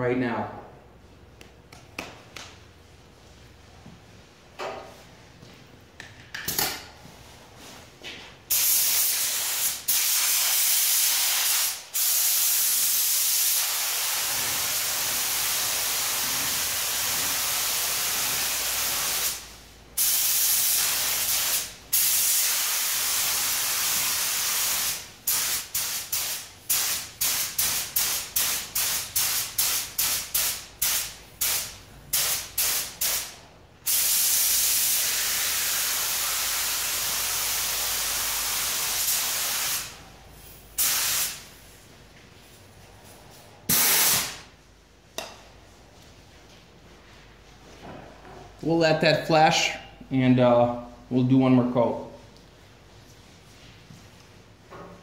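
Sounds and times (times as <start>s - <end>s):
paint spray gun hissing: 40.8s - 41.4s, 43.7s - 44.4s.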